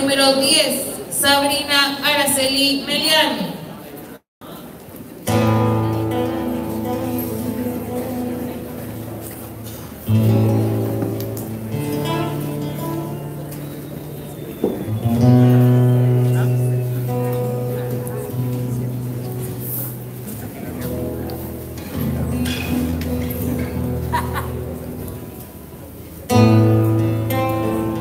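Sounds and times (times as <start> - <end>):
guitar folk music: 5.2 - 28.0.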